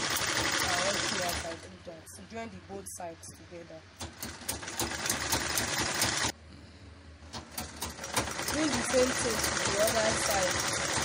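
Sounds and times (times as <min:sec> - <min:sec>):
sewing machine stitching: 0:00.0 - 0:01.7, 0:04.0 - 0:06.3, 0:07.4 - 0:11.0.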